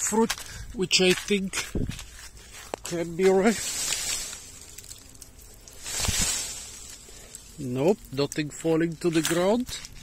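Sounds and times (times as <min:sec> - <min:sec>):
rustle of leaves and twigs: 0:00.0 - 0:10.0.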